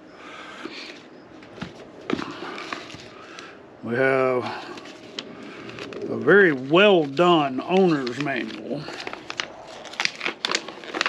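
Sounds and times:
paper crackling: 0:00.7 - 0:03.5, 0:04.4 - 0:11.0.

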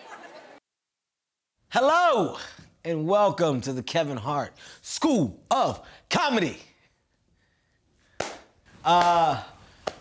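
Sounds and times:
man speaking: 0:01.7 - 0:06.8, 0:08.8 - 0:09.6
sharp snap: 0:08.2 - 0:10.0.

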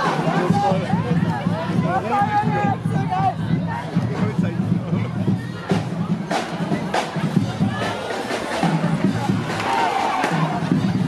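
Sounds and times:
crowd talking and calling out: 0:00.0 - 0:11.0
parade music: 0:00.0 - 0:11.0.

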